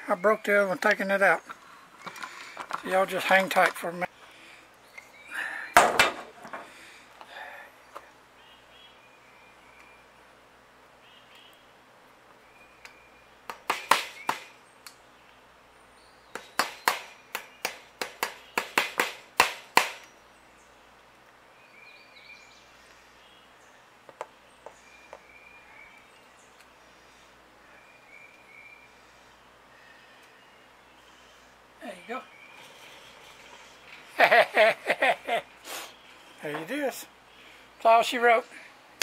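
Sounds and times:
birds chirping: 0.0 - 39.0.

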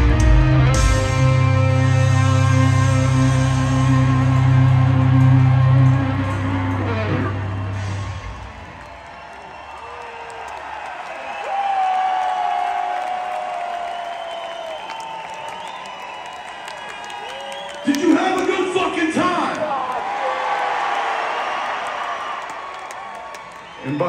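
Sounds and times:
crowd cheering and whooping: 0.7 - 24.0.

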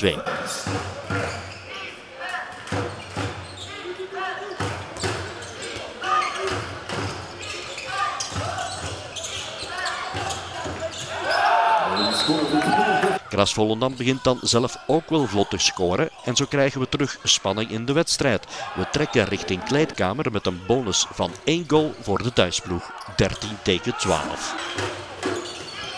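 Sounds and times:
people calling out: 11.2 - 13.3.

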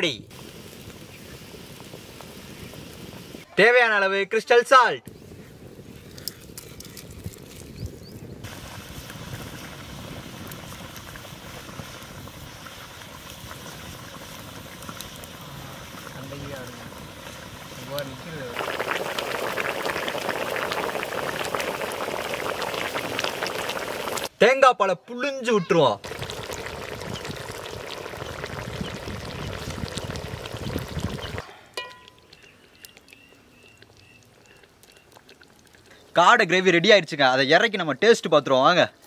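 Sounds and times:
gravy bubbling and popping: 5.2 - 24.3, 26.0 - 36.2.

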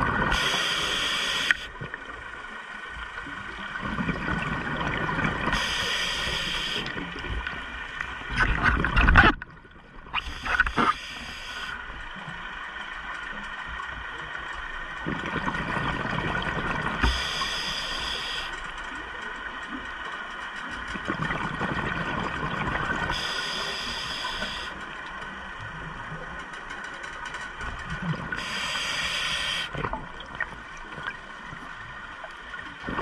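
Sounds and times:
regulator inhale hiss: 0.3 - 1.7, 5.5 - 7.0, 10.2 - 11.8, 17.0 - 18.6, 23.1 - 24.8, 28.4 - 29.8.

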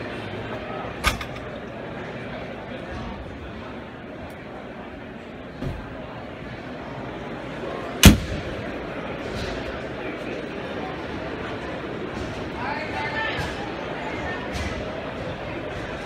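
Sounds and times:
distant voices in hall: 0.0 - 16.0
loud sharp bang with echo: 8.0 - 8.6.

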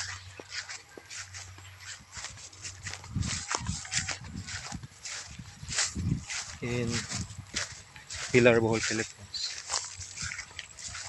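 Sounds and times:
footsteps through tall grass: 0.0 - 11.0
dull low thuds: 2.2 - 8.9.

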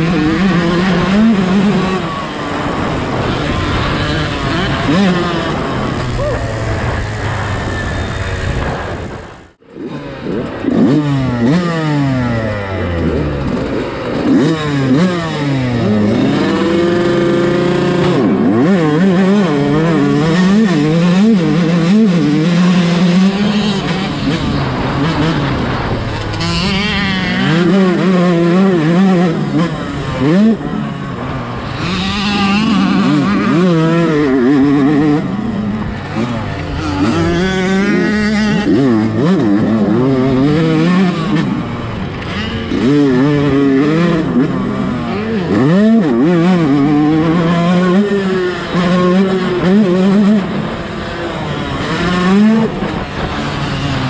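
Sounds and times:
motocross bike engine revving: 0.0 - 54.0.

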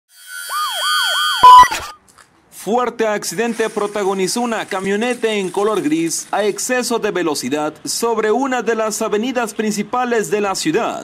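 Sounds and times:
fast yelping siren: 0.1 - 2.0.

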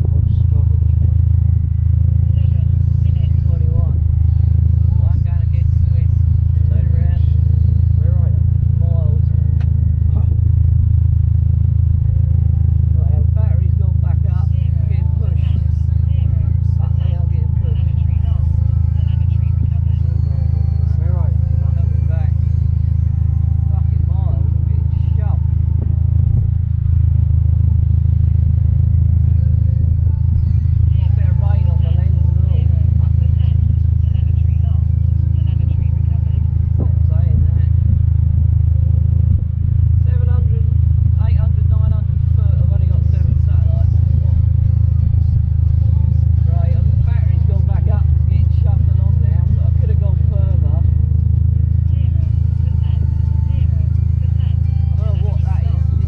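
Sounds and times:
indistinct voices: 0.0 - 56.0
loud low rumble: 0.0 - 56.0.

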